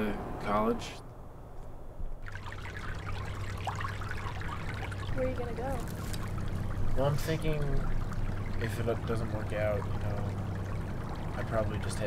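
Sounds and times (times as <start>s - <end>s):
low steady hum: 0.0s - 12.0s
water trickling: 2.2s - 12.0s.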